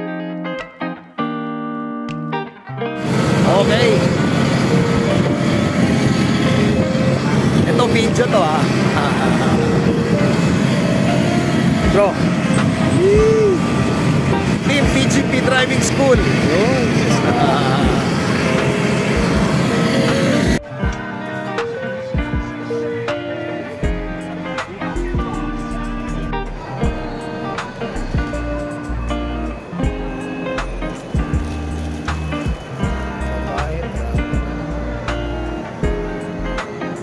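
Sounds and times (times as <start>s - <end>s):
wind buffeting microphone: 3.0s - 19.7s
faint voices: 3.0s - 37.0s
jet airliners roaring: 3.0s - 37.0s.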